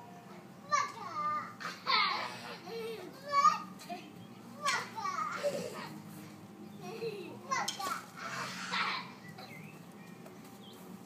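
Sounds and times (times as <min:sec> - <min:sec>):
toddlers making vocal sounds: 0:00.7 - 0:06.0, 0:06.8 - 0:09.2.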